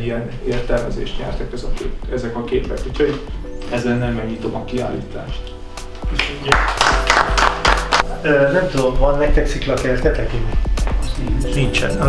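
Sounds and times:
music playing: 0.0s - 12.0s
small group applauding: 6.0s - 8.2s.

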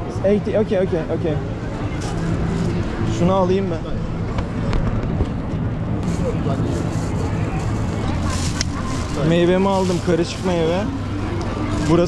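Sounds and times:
crowd chatter: 0.0s - 12.0s
low street hum: 0.0s - 12.0s
plastic bag crinkle: 6.8s - 10.9s.

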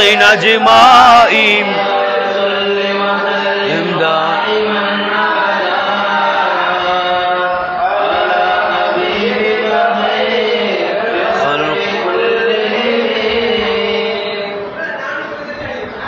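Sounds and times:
men chanting: 0.0s - 16.0s.

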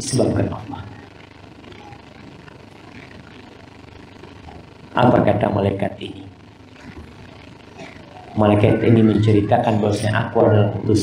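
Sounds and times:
room noise hum: 0.0s - 11.0s
speech: 8.4s - 11.0s.

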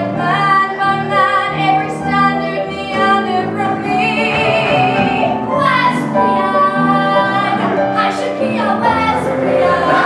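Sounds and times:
piano accompaniment: 0.0s - 10.0s
woman singing: 0.0s - 10.0s.

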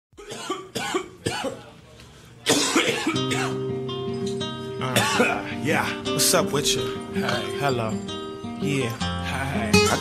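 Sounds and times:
sharp coughs: 0.2s - 1.7s, 2.4s - 3.6s, 4.9s - 5.6s.

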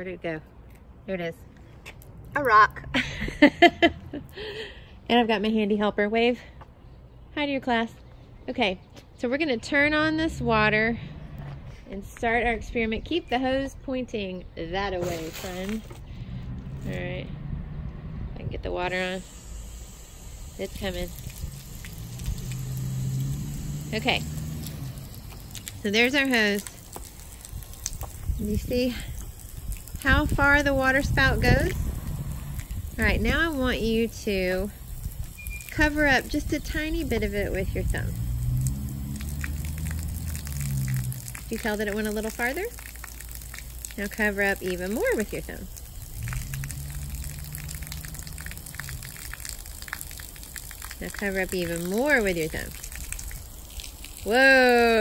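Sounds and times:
low steady hum: 9.4s - 55.0s
hose water splattering on concrete: 14.9s - 17.3s, 18.6s - 55.0s.

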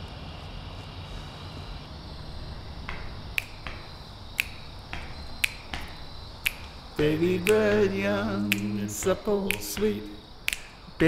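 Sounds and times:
fingers snapping: 2.2s - 11.0s
soft clicks: 8.4s - 11.0s.

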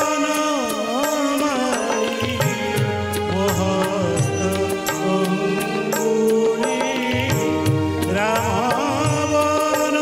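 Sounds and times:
keyboard: 0.0s - 10.0s
man singing into microphone: 0.0s - 10.0s
steady percussion beat: 0.8s - 10.0s.

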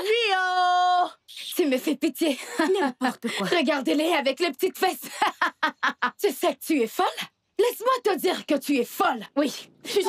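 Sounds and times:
woman talking quickly: 0.0s - 5.4s, 6.0s - 10.0s.

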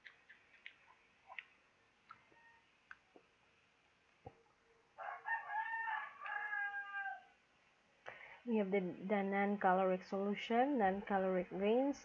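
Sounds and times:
rooster crowing: 2.2s - 2.7s, 5.0s - 7.4s.

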